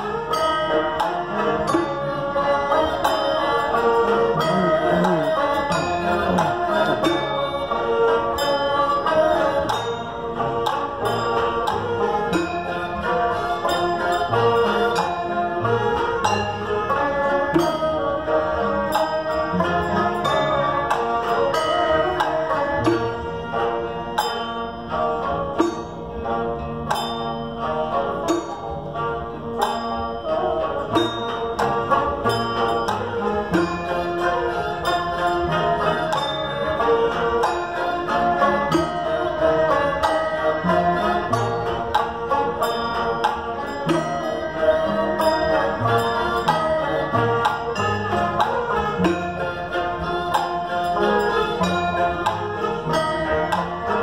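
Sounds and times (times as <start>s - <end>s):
bowed fiddles: 0.0s - 54.0s
light percussion strokes: 0.0s - 54.0s
long zither: 0.0s - 54.0s
plucked lutes: 0.0s - 54.0s.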